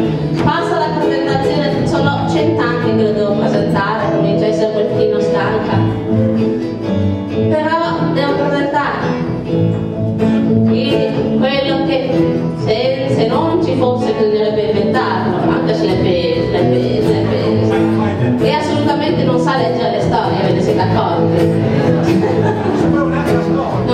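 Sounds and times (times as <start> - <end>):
acoustic guitars: 0.0 - 23.9
double bass: 0.0 - 23.9.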